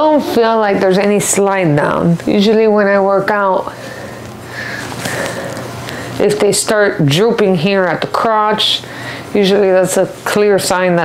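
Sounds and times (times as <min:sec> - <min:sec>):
person breathing: 0:03.7 - 0:06.2, 0:08.8 - 0:09.3.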